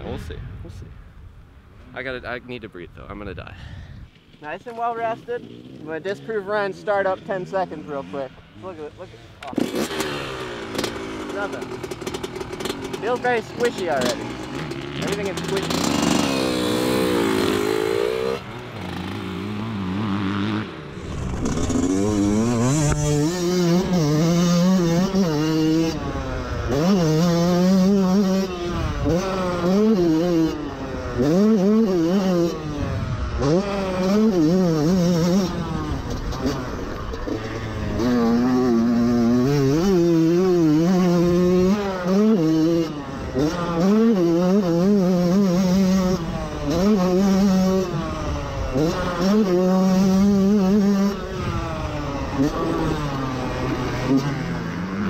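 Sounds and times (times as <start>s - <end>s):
motocross bike engine revving: 4.3s - 55.0s.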